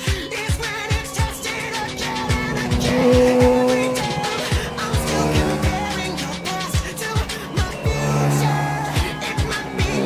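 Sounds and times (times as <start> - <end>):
pop music with a beat: 0.0 - 10.0
motorcycle engine: 0.3 - 10.0.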